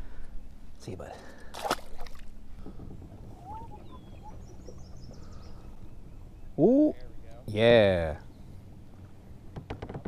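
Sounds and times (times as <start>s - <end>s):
fish splashing into water: 1.5s - 2.3s.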